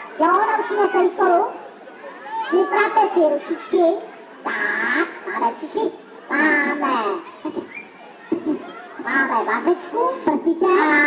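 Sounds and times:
high-pitched voices calling out: 0.0s - 11.0s.

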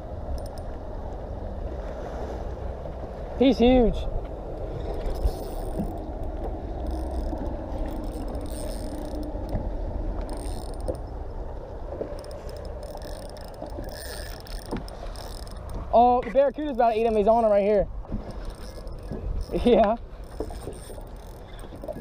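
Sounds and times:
constant low rumble: 0.0s - 22.0s
fishing reel gears whirring: 0.3s - 0.7s, 4.6s - 11.2s, 12.1s - 17.5s, 18.3s - 22.0s.

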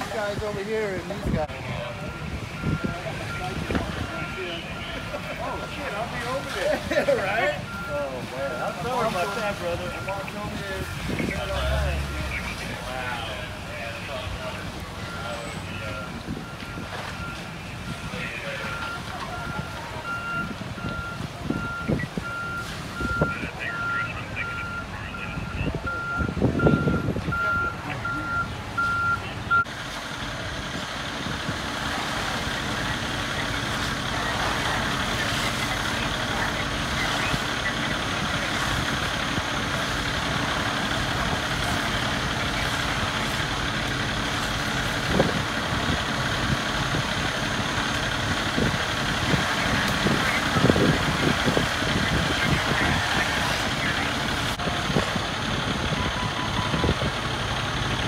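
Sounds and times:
fire truck engines running: 0.0s - 58.0s
reversing alarm beeps: 1.7s - 6.6s, 7.2s - 12.6s, 15.0s - 18.0s, 18.6s - 29.7s, 55.9s - 57.0s
faint indistinct voices: 7.5s - 29.7s, 46.9s - 57.5s.

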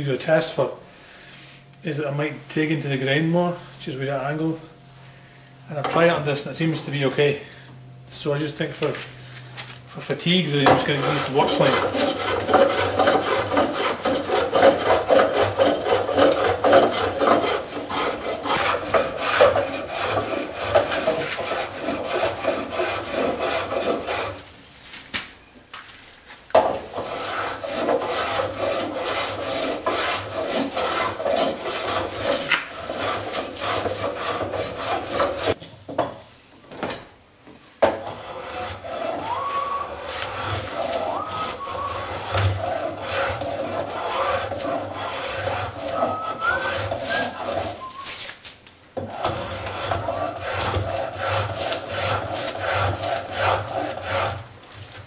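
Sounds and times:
plane blade scraping wood: 10.0s - 24.5s, 26.6s - 35.6s, 38.0s - 48.3s, 49.0s - 55.0s.

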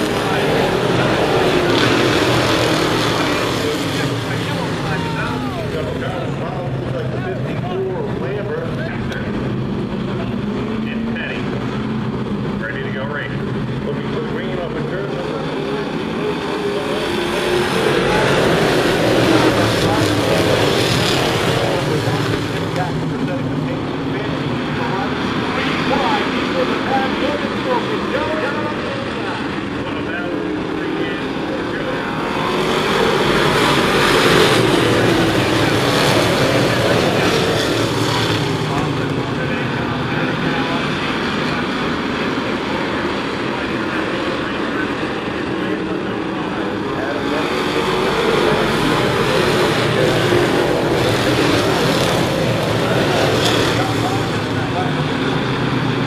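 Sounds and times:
stock car engines racing: 0.0s - 56.0s.

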